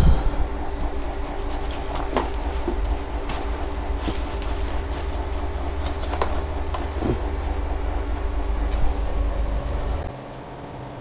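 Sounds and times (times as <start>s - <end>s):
faint rustles: 0.0s - 10.1s
loud low rumble: 0.0s - 10.6s.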